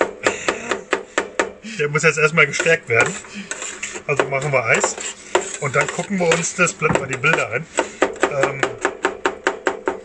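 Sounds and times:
metal spatulas clacking on steel plate: 2.6 - 9.4.

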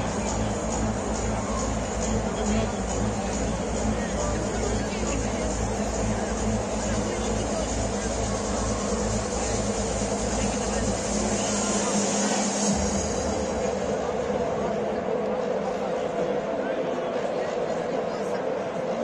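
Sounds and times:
music with pulsing bass beat: 0.0 - 16.6
stadium crowd noise: 0.0 - 19.0.

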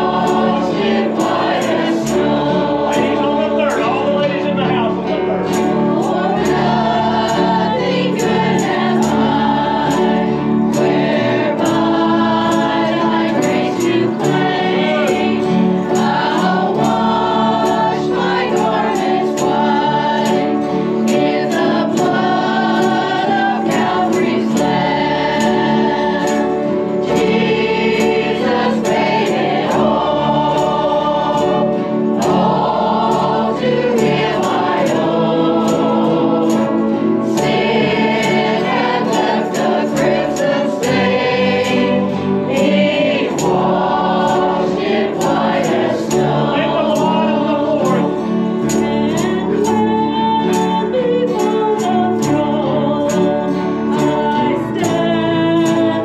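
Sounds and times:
choir singing into microphones: 0.0 - 56.0
instrumental accompaniment: 0.0 - 56.0.

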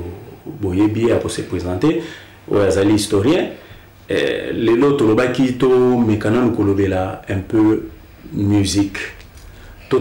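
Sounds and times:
man speaking: 0.0 - 9.2, 9.8 - 10.0.

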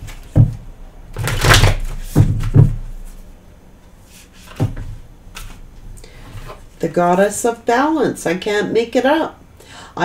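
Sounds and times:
dull knock on desk: 2.1 - 2.9.

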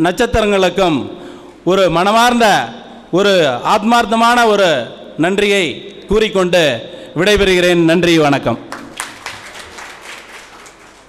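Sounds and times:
applause: 8.7 - 11.0.

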